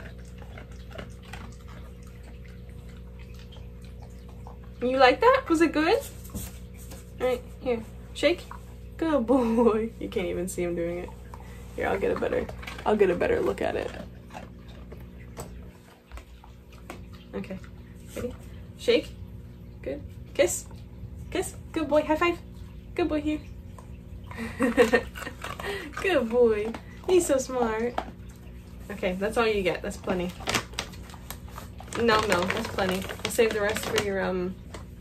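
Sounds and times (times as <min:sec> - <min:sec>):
dog chewing crunchy treat: 0:00.0 - 0:04.9, 0:11.2 - 0:18.6, 0:24.6 - 0:35.0
faint steady hum: 0:00.0 - 0:35.0.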